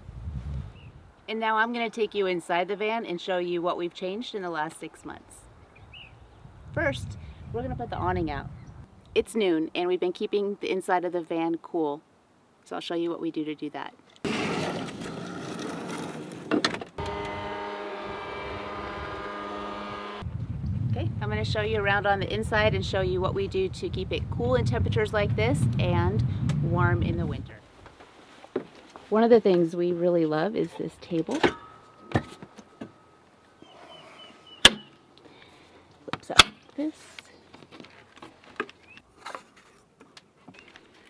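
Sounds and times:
awning motor running: 17.0s - 20.2s
rustling noise: 27.3s - 31.3s.

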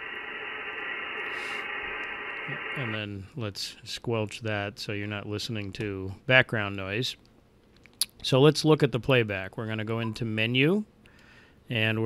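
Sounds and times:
radio receiver hiss and static: 0.0s - 3.3s.

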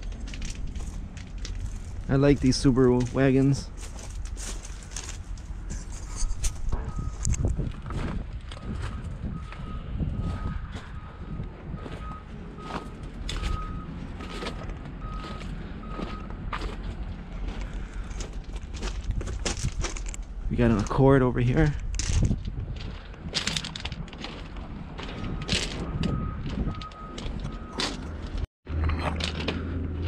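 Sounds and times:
footsteps crunching on gravel: 0.0s - 11.0s, 11.8s - 21.0s, 21.6s - 28.5s
vehicle reversing alarm beeps: 6.2s - 18.2s, 24.4s - 28.4s.

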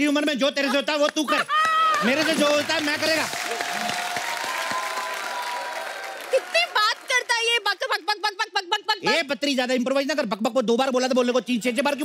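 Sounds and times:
audience applauding: 1.6s - 7.6s.

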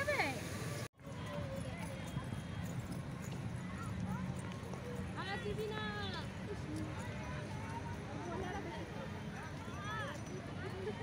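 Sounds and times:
children's footsteps on pavement: 1.0s - 11.0s.

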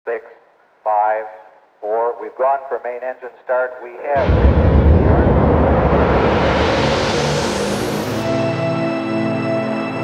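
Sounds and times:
narrow-band radio voice: 0.1s - 4.4s.

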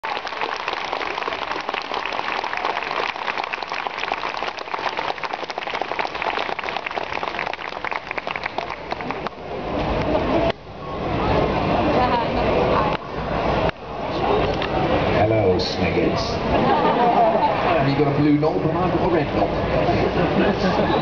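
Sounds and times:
audience applauding: 0.0s - 9.4s.

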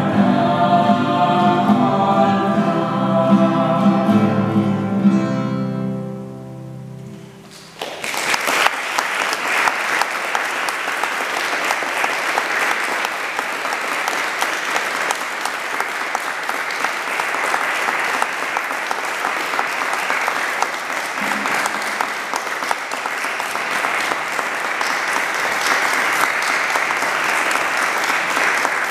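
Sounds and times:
guitar music: 0.0s - 7.5s, 21.2s - 22.0s
audience applauding: 7.5s - 28.9s.

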